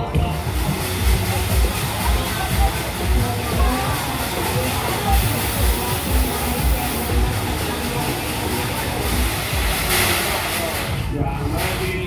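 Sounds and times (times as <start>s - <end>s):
fairground music with thumping beat: 0.0s - 12.0s
spinning ride rumble: 0.0s - 12.0s
burst of hiss-like noise: 0.2s - 12.0s.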